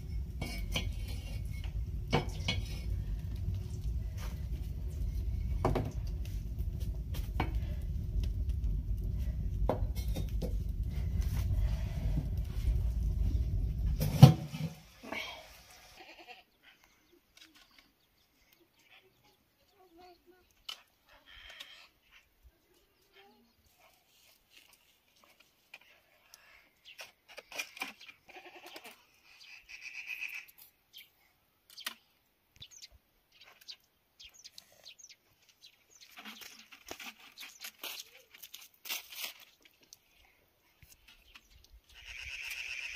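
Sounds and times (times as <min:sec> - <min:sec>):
goat bleating: 0:15.9 - 0:16.5, 0:28.3 - 0:29.0, 0:41.9 - 0:42.9
faint short animal calls: 0:28.3 - 0:30.6, 0:41.9 - 0:42.9.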